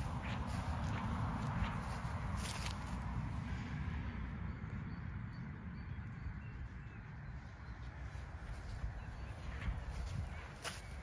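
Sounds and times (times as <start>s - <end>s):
footsteps swishing through grass: 0.0s - 3.2s, 8.3s - 11.0s.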